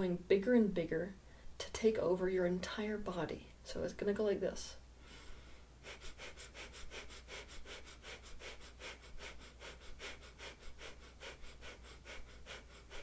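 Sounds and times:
woman breathing rapidly through nose: 0:05.0 - 0:13.0.

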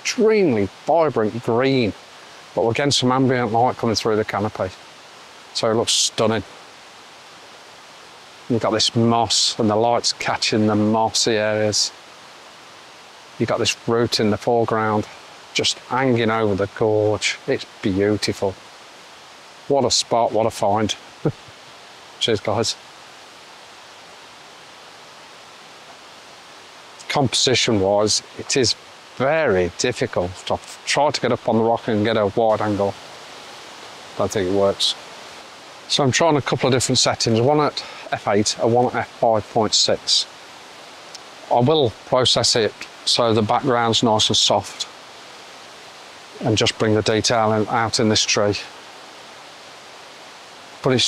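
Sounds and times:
rushing outdoor ambience hiss: 0:00.0 - 0:51.0.

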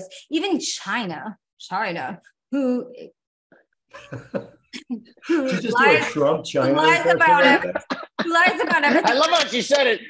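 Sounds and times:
person's voice in broken bursts: 0:05.4 - 0:10.0.

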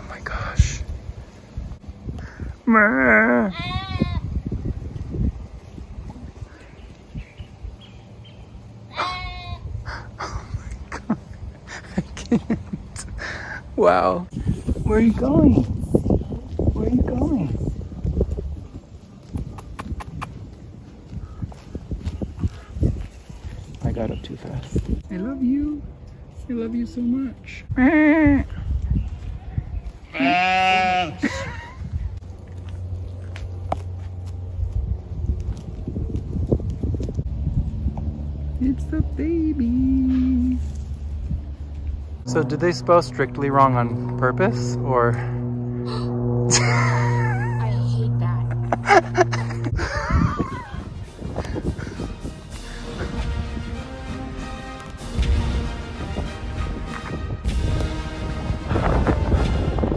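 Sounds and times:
sheep bleating: 0:03.0 - 0:04.2, 0:08.9 - 0:09.7, 0:30.1 - 0:31.4.

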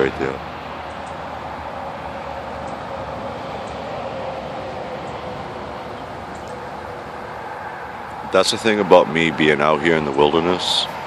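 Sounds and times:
outdoor rumble and hiss: 0:00.0 - 0:11.0
faint high ticks: 0:06.3 - 0:06.6.

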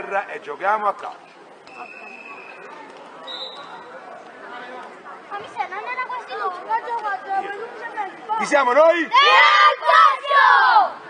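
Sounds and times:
children chattering: 0:01.7 - 0:11.0.

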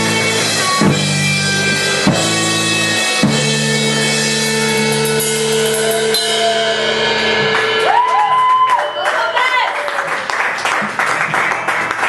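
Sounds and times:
punk rock band playing: 0:00.0 - 0:09.7
cymbal crashes: 0:02.6 - 0:08.6.

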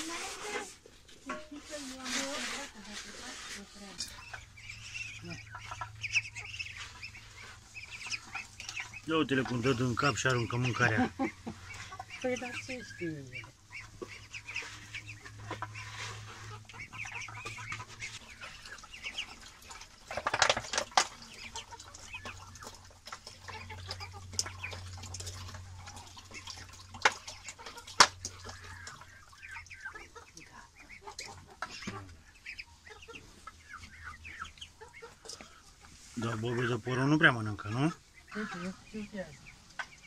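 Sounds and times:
young ducks calling and chattering: 0:00.0 - 0:40.0.

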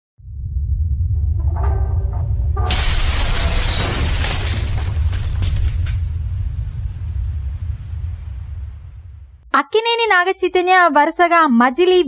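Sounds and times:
deep rumble: 0:00.2 - 0:09.5
music: 0:01.0 - 0:02.8
shattering crash with crackling debris: 0:02.6 - 0:06.6.

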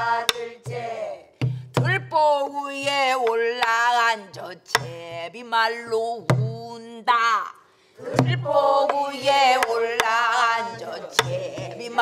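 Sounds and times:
woman singing long bending notes: 0:08.2 - 0:12.0.

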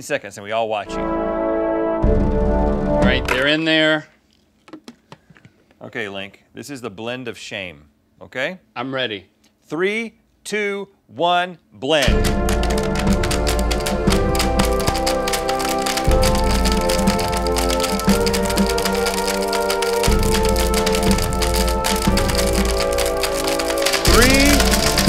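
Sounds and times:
music chords: 0:00.9 - 0:03.5, 0:12.0 - 0:25.0
plastic toys rattling in blender jar: 0:12.0 - 0:25.0.

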